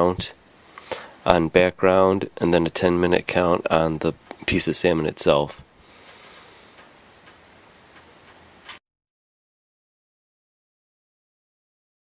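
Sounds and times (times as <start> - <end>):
steady hiss: 0.0 - 8.8.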